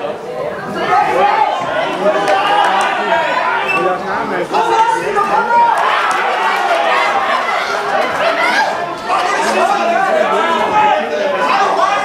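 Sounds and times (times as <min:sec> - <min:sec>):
spectators talking in echoing hall: 0:00.0 - 0:12.0.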